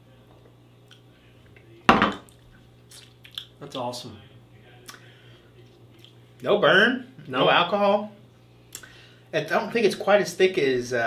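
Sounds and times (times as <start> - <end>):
low steady hum: 0.0 - 11.0
glass set down on wood: 1.9 - 2.3.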